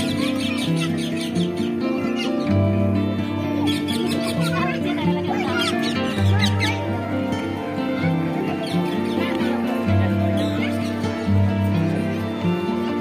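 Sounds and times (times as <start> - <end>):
birds chirping: 0.0 - 13.0
music of long held notes: 0.0 - 13.0.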